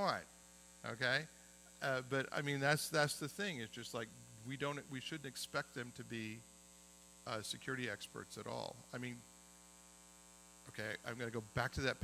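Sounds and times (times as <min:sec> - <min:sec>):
man speaking: 0:00.0 - 0:06.4, 0:07.3 - 0:09.3, 0:10.7 - 0:12.0
electrical mains hum: 0:00.0 - 0:12.0.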